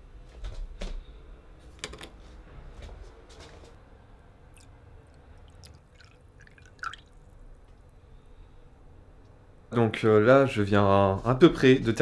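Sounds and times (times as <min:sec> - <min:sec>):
coffee trickling into a cup: 0:05.4 - 0:07.3.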